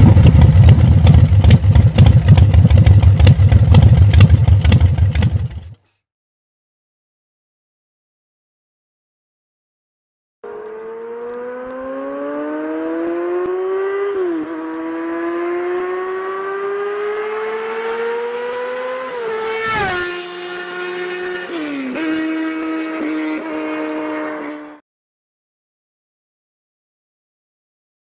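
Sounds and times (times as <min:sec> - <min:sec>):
motorcycle engine accelerating: 0:00.0 - 0:05.8, 0:10.4 - 0:24.8.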